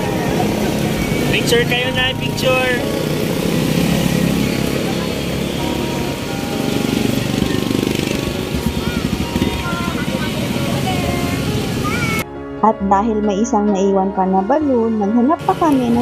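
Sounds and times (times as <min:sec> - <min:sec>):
motorcycle engine running: 0:00.0 - 0:12.2
street traffic: 0:00.0 - 0:16.0.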